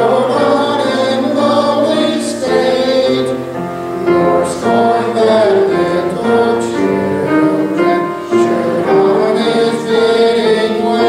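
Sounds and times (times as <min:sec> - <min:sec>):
congregation singing a hymn: 0:00.0 - 0:11.0.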